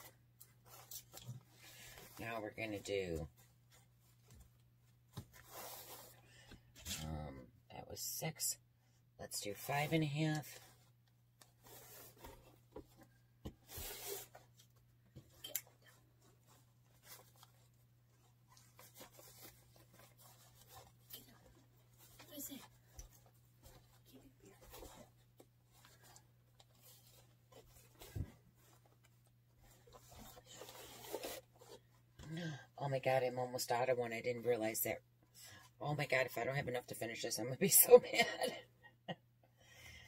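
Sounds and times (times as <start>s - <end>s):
fabric ribbon rustling and crinkling: 0.0s - 6.2s, 10.4s - 32.2s.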